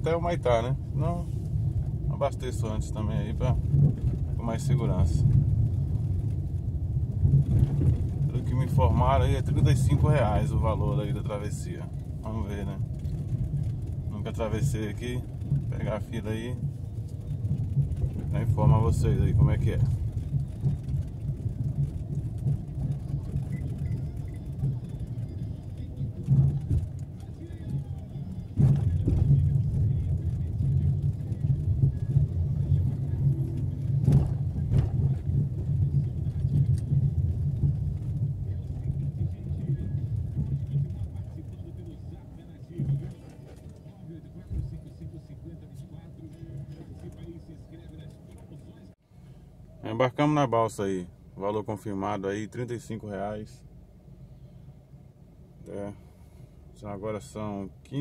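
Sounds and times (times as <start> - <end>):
car engine and tyres rumbling: 0.0 - 58.0.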